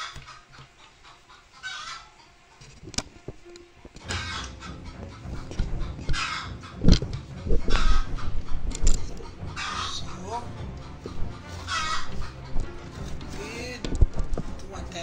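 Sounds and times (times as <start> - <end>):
harsh bird calls: 4.0 - 13.1.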